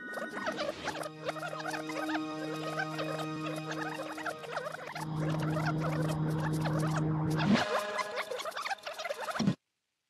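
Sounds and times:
rapid high squeaky chirps: 0.0s - 9.5s
low electronic hum: 1.1s - 7.6s.

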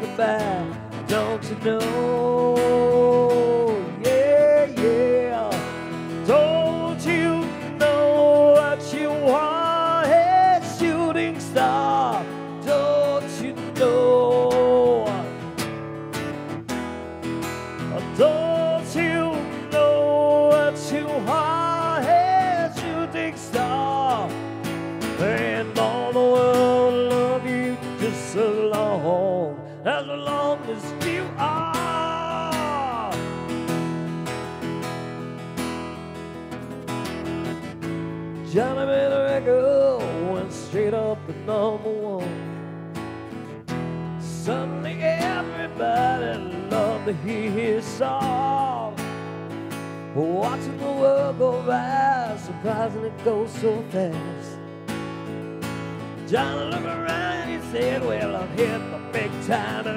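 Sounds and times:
guitar lead melody with bent notes: 0.0s - 59.9s
strummed acoustic guitar chords: 0.0s - 59.9s.

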